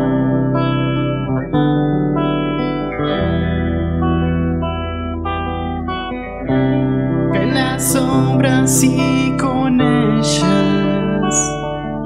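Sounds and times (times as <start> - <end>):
electric guitar sustained chords: 0.0 - 12.0.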